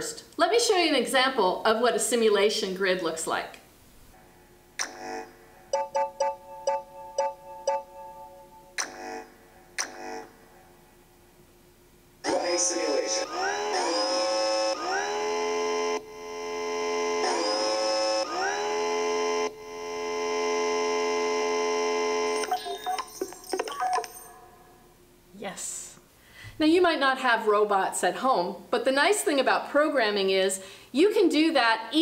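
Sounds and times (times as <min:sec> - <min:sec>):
short electronic blips: 0:04.8 - 0:10.4
synthesized motor-like hum: 0:12.2 - 0:22.4.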